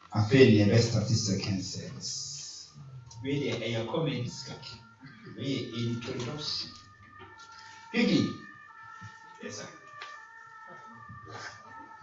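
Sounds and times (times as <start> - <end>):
soft sustained keyboard chords: 0.1 - 7.3.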